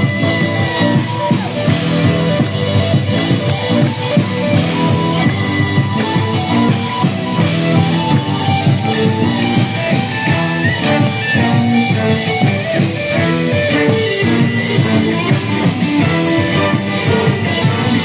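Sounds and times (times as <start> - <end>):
live band playing loudly: 0.0 - 18.0
saxophones: 0.0 - 18.0
trombone: 0.0 - 18.0
trumpet: 0.0 - 18.0.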